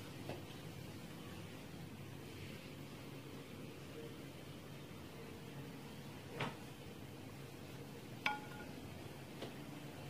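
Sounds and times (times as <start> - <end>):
rice paddle clinking on metal pot: 8.2 - 8.8.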